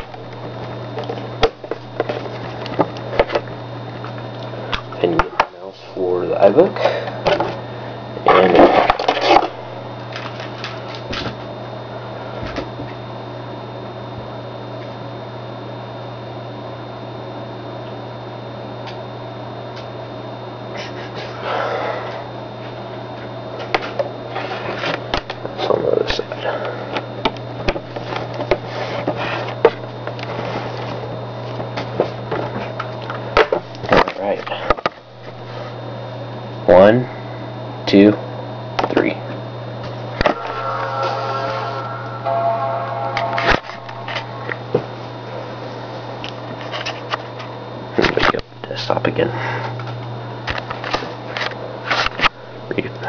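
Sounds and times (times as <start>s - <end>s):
low hum: 39.8s - 46.5s.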